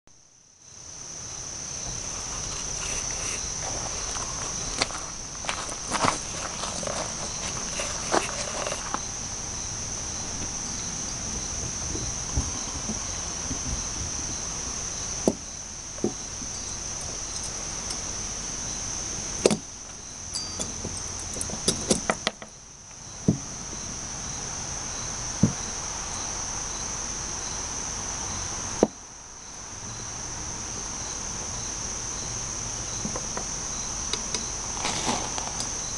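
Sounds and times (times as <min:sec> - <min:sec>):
insects trilling: 0:00.6 - 0:35.9.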